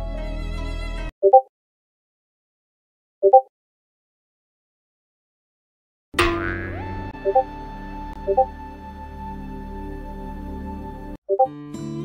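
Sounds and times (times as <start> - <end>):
cartoon boing sound effect: 6.2 - 7.5
background music: 6.3 - 12.0.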